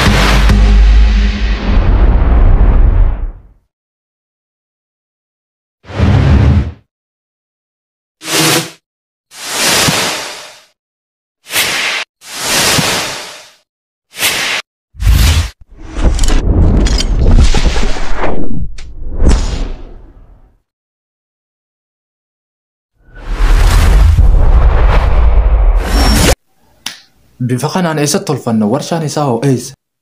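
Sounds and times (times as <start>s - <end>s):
deep rumbling boom: 0.0s - 3.5s, 23.4s - 25.9s.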